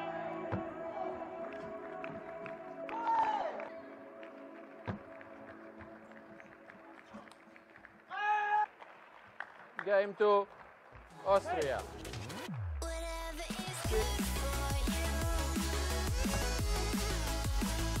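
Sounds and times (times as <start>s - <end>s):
background music: 0.0s - 8.1s, 11.1s - 18.0s
loud shout: 2.9s - 3.6s, 8.1s - 8.7s.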